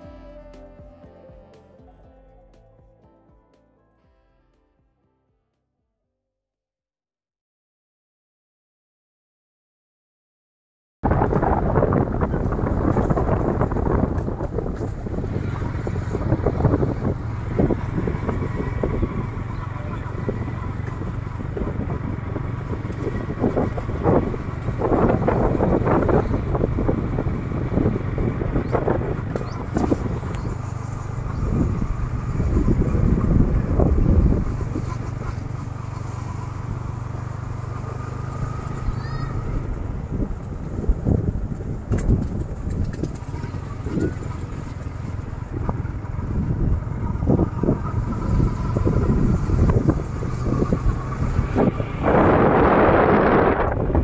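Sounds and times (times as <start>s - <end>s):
vehicle rumbling on dirt road: 11.0s - 54.0s
wind buffeting microphone: 11.0s - 54.0s.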